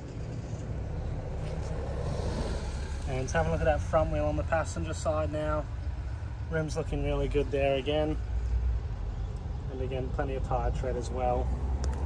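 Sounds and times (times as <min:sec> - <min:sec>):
road traffic rumble: 0:00.0 - 0:12.0.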